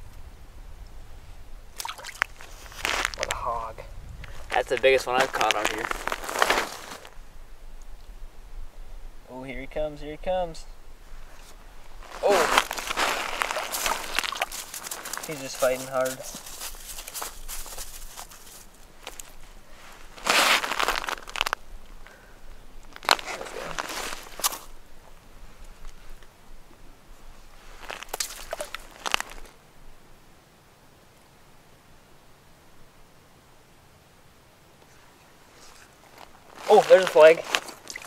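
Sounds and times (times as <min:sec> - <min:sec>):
crunching and scuffling: 0:01.8 - 0:03.4, 0:04.2 - 0:07.2, 0:11.4 - 0:21.6, 0:22.8 - 0:24.8, 0:27.4 - 0:29.6, 0:35.5 - 0:38.0
fish thrashing on snow and ice: 0:01.8 - 0:03.4, 0:04.3 - 0:07.1, 0:12.0 - 0:21.6, 0:22.9 - 0:24.8, 0:27.6 - 0:29.6, 0:35.6 - 0:38.0
clothing rustling: 0:05.2 - 0:07.1, 0:11.4 - 0:21.6, 0:35.5 - 0:38.0.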